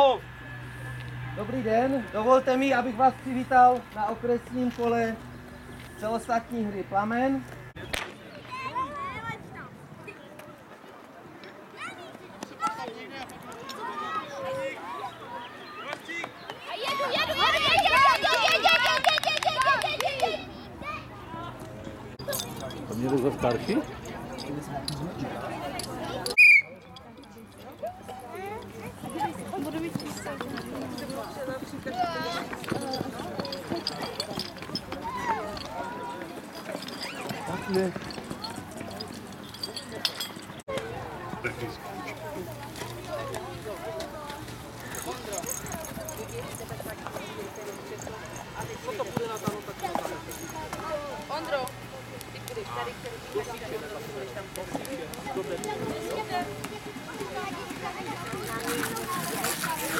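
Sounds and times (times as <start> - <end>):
faint children's voices: 7.7 - 22.8, 25.0 - 59.9
children cheering high-pitched: 16.8 - 21.0.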